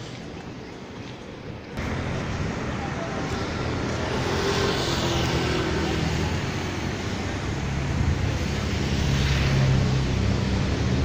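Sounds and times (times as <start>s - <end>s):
motor vehicle passing: 1.8s - 11.0s.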